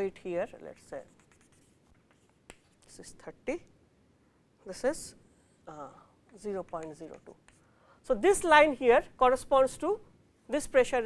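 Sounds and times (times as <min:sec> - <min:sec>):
chalk tapping on chalkboard: 0:00.7 - 0:02.9, 0:06.3 - 0:07.6.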